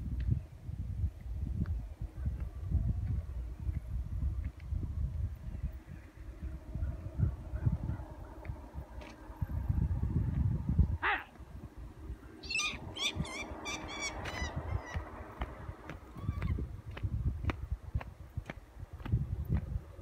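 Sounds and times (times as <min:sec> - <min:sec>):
wind buffeting microphone: 0:00.0 - 0:20.0
bird calling: 0:12.2 - 0:15.1.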